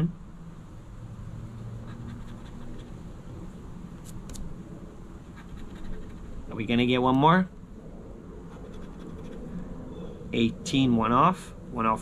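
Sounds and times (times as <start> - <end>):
poker chip scratching lottery ticket: 1.8 - 3.0, 5.4 - 6.6, 8.5 - 9.5.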